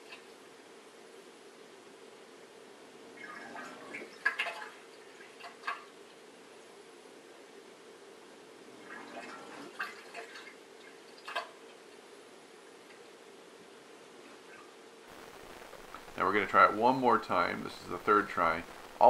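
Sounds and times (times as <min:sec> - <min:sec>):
faint steady hum: 0:00.0 - 0:19.0
water gurgling and splashing: 0:08.7 - 0:11.6.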